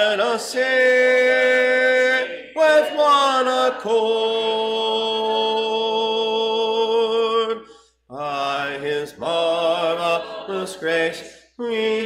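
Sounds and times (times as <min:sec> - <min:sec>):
man singing a hymn: 0:00.0 - 0:12.0.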